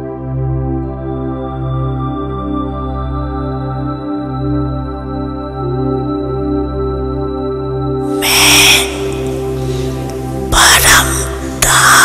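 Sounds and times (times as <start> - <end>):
ambient meditation music: 0.0 - 12.0.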